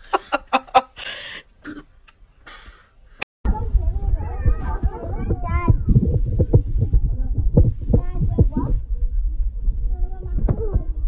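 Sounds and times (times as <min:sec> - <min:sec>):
low hum: 0:03.5 - 0:11.0
low thumps: 0:03.5 - 0:11.0.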